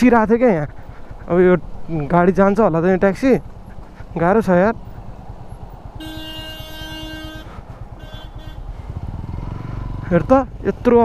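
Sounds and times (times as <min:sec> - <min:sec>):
motorcycle engine running: 0:00.3 - 0:11.0
vehicle horn honking: 0:06.0 - 0:08.9.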